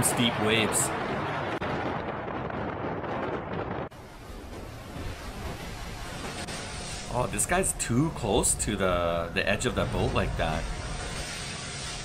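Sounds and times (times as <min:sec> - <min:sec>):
storm wind: 0:00.0 - 0:12.0.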